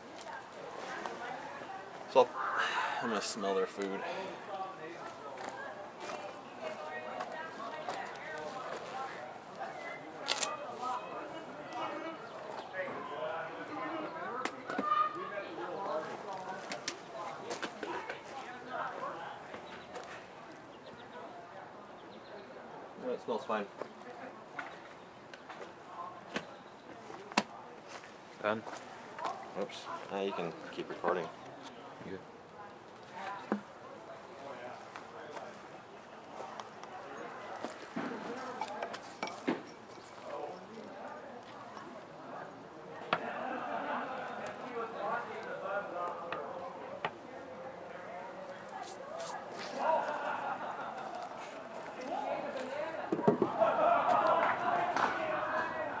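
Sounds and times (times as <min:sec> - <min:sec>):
indistinct talk: 0:00.0 - 0:56.0.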